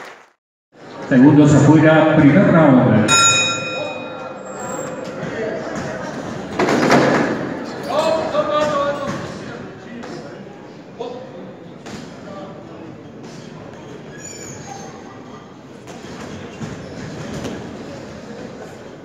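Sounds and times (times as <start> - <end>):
boxing ring bell: 3.1 - 5.0.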